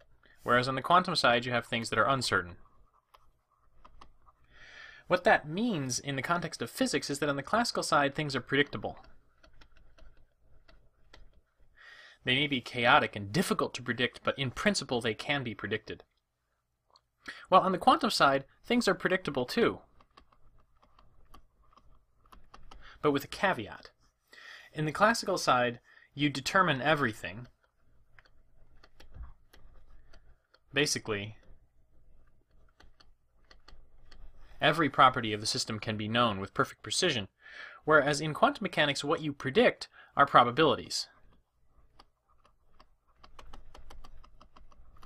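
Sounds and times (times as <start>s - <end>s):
stylus clicking on a tablet: 3.0s - 4.4s, 8.6s - 11.5s, 19.8s - 22.9s, 26.9s - 30.7s, 31.3s - 34.6s, 41.2s - 45.0s.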